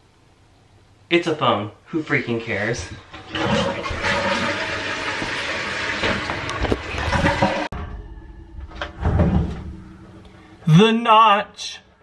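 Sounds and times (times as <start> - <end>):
toilet flushing: 2.5 - 7.8.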